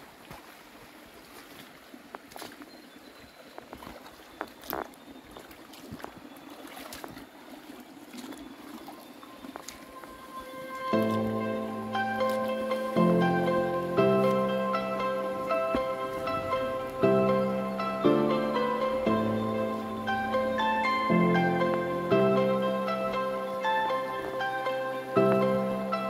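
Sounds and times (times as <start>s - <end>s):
footsteps on creek stones: 0.0s - 22.1s, 23.6s - 25.7s
running water: 0.0s - 26.0s
plucked-string music: 10.0s - 26.0s.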